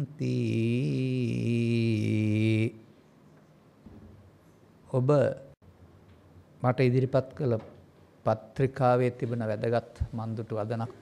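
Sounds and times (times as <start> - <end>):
man chanting a held note: 0.0 - 2.8.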